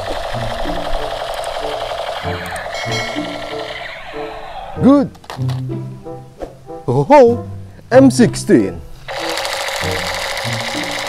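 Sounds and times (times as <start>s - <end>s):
toy rifle electronic rattling: 0.0s - 5.6s, 9.1s - 11.0s
background music: 0.0s - 11.0s.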